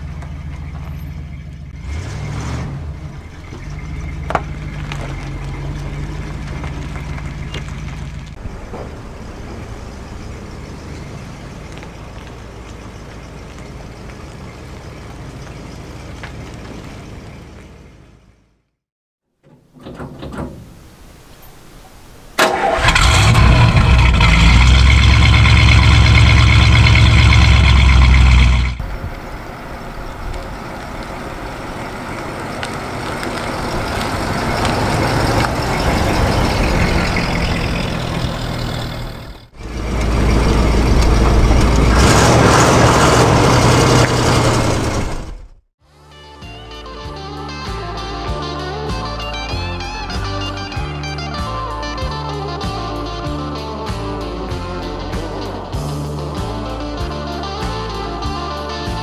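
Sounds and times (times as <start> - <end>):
car engine running: 0.0 - 18.6, 22.4 - 45.6
car driving up: 0.0 - 18.8, 19.4 - 45.6.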